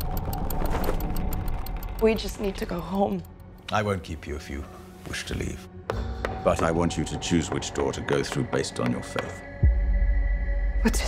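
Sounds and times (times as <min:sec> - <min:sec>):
chain mechanism ticking: 0:00.0 - 0:03.7.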